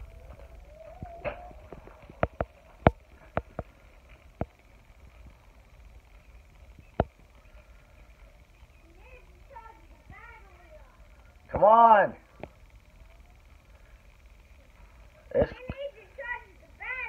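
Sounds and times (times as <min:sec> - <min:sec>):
faint steady background noise: 0:00.0 - 0:17.0.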